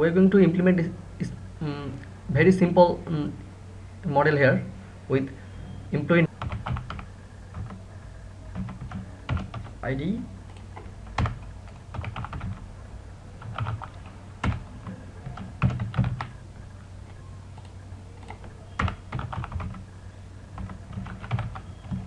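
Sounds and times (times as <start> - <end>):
low steady hum: 0.0 - 22.0
computer keyboard typing: 6.2 - 7.9, 8.5 - 9.8, 10.4 - 12.7, 13.4 - 22.0.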